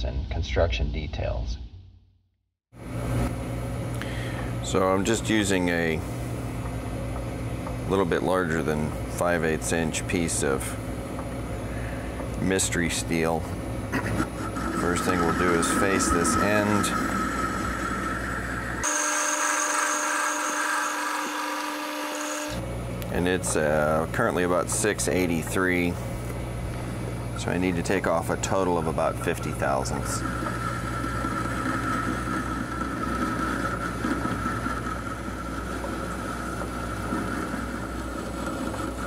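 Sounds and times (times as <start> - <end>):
thin steady machine whine: 2.8 - 39.0
metal lathe running: 13.8 - 25.4, 27.3 - 39.0
electric motor whirring: 13.9 - 22.6, 27.4 - 39.0.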